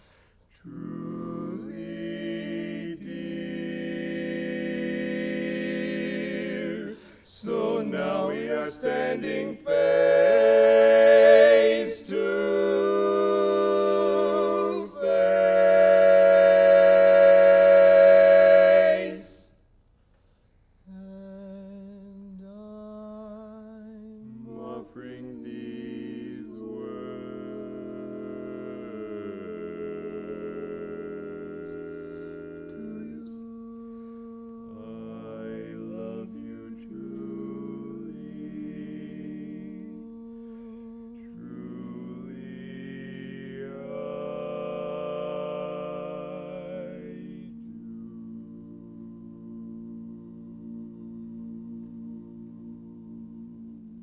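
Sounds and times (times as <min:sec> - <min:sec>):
male quartet singing a cappella: 0:00.0 - 0:19.6, 0:20.9 - 0:48.6.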